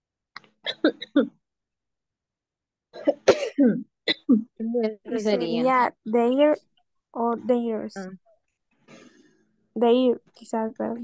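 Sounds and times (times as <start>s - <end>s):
person coughing: 0.7s - 1.4s, 3.0s - 4.5s.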